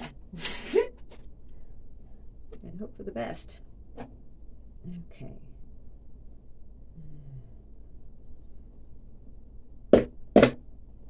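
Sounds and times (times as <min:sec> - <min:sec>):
room hum: 0:00.0 - 0:11.0.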